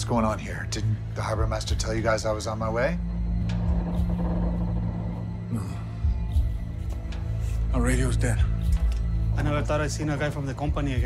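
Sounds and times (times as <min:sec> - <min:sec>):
low droning soundtrack rumble: 0:00.0 - 0:11.0.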